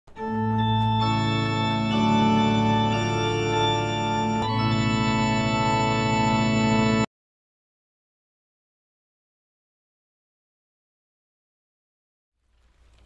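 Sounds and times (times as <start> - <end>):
organ chords: 0.1 - 7.1.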